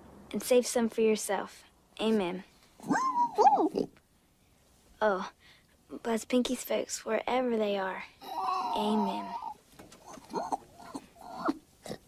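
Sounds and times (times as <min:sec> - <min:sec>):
piglet squealing: 0:02.8 - 0:03.9, 0:08.2 - 0:12.0.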